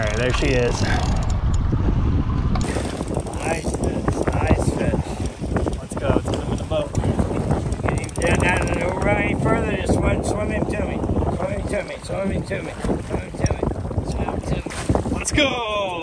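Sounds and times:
wind on microphone: 0:00.0 - 0:16.0
fishing reel cranking: 0:02.6 - 0:09.3
waves washing against boat: 0:02.6 - 0:16.0.

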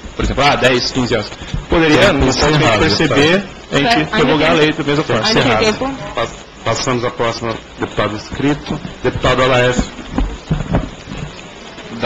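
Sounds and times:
dull low thumps: 0:08.2 - 0:11.4
microphone handling rustle: 0:08.2 - 0:11.5.

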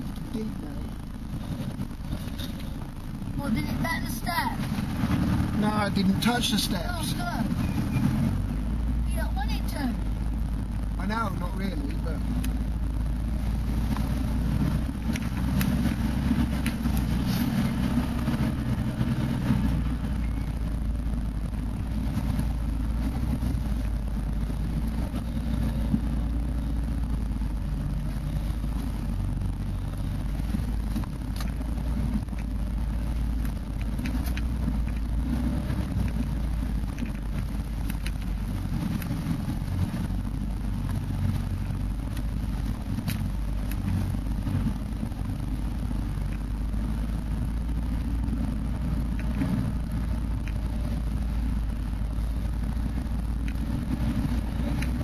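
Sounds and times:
vehicle engine rumbling: 0:00.0 - 0:55.0.

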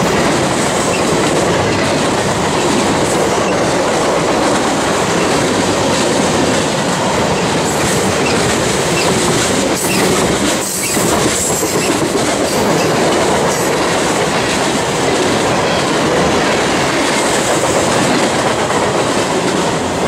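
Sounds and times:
rhythmic clickety-clack: 0:00.0 - 0:20.0
train wheels rumbling on rails: 0:00.0 - 0:20.0.

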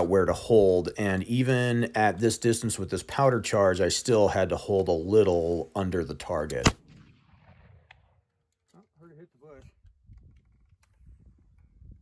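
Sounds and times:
echo of a gunshot: 0:06.5 - 0:08.3.

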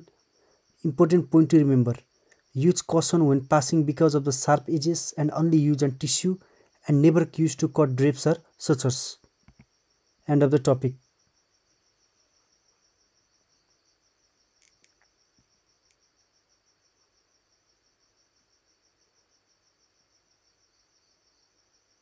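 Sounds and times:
faint clicks: 0:14.6 - 0:16.0.

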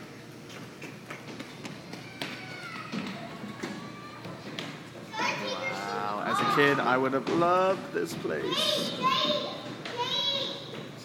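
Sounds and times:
children's voices and play: 0:01.9 - 0:06.9, 0:08.3 - 0:11.0.

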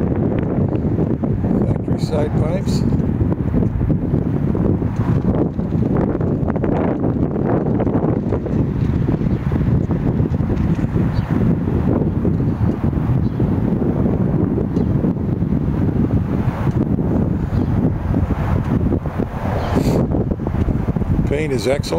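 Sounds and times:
wind buffeting microphone: 0:00.0 - 0:21.9.

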